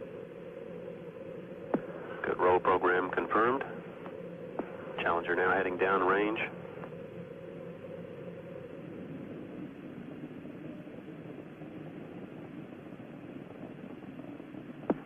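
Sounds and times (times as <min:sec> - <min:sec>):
rocket exhaust rumble: 0:00.0 - 0:15.0.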